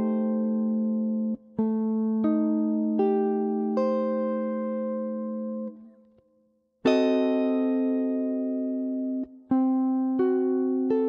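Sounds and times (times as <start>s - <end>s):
clean electric guitar chords: 0.0s - 5.9s, 6.9s - 11.0s.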